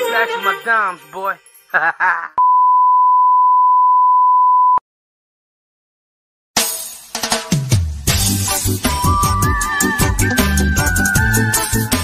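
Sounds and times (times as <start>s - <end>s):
steady electronic beep: 2.4s - 4.8s.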